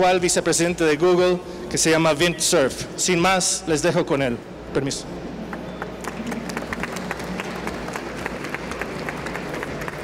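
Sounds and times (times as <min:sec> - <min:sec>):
audience applause: 0:05.8 - 0:10.0.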